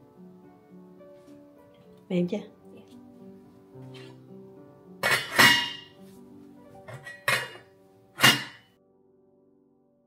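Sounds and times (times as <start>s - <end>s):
glass lid clanking on metal pot: 5.0s - 5.9s, 6.9s - 7.6s, 8.2s - 8.6s.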